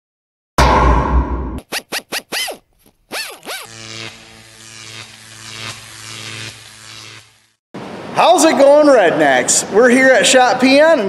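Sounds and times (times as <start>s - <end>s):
synthetic zaps sweeping in pitch: 1.6s - 7.6s
low electric buzz: 3.4s - 7.6s.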